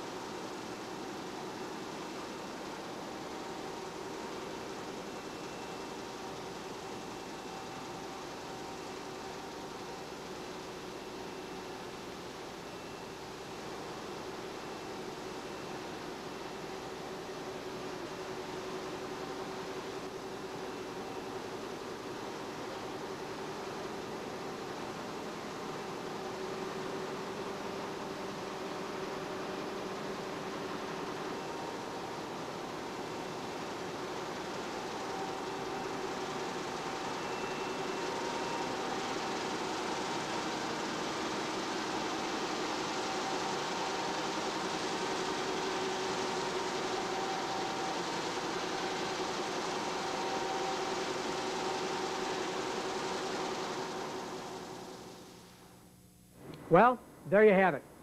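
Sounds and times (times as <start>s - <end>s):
printing press running: 0.0s - 55.4s
faint humming tones: 0.0s - 58.0s.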